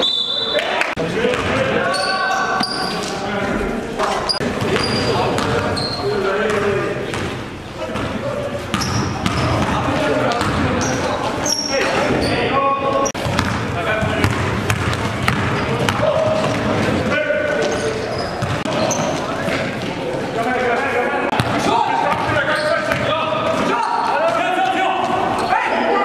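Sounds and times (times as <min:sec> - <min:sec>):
players shouting and chatting: 0:00.0 - 0:26.0
sneaker squeaks: 0:01.8 - 0:03.2, 0:04.2 - 0:06.2, 0:07.1 - 0:13.6, 0:17.4 - 0:20.0, 0:21.3 - 0:24.4
basketball dribbling on hardwood: 0:13.2 - 0:16.7.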